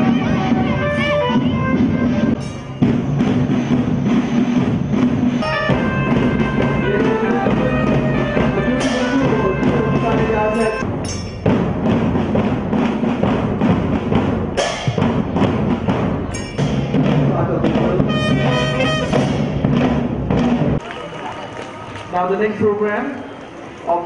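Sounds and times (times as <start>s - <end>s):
marching drum band: 0.0s - 21.3s.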